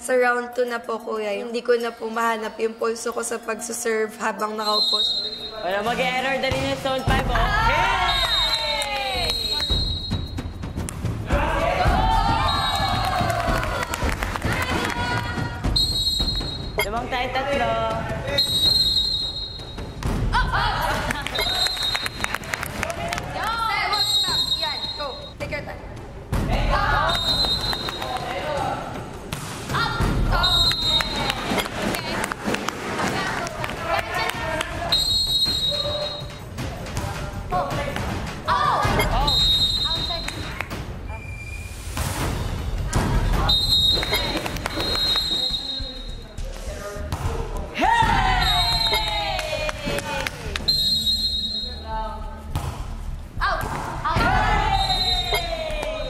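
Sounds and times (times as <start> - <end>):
players shouting: 11.2 - 15.8
volleyball struck by hand: 52.5 - 53.0.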